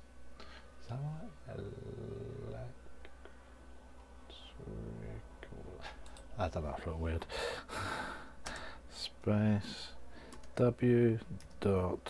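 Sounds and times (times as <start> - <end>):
man speaking in low voice: 0.8 - 2.8, 4.2 - 7.3, 8.9 - 10.0, 10.6 - 12.0.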